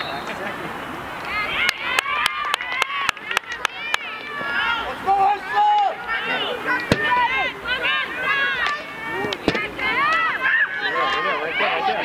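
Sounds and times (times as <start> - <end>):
voices shouting and calling: 0.0 - 12.0
long held shout: 1.3 - 12.0.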